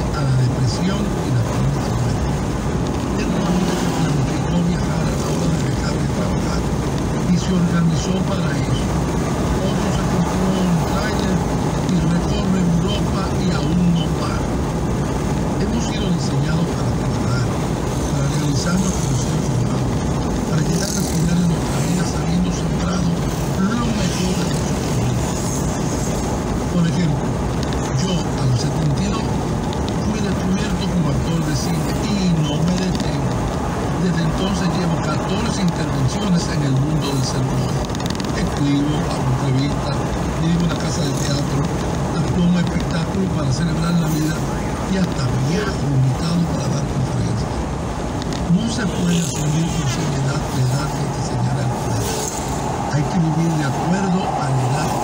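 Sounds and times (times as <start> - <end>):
man talking: 0.0 - 14.6, 15.5 - 47.7, 48.3 - 55.0
car road and engine noise: 0.0 - 55.0.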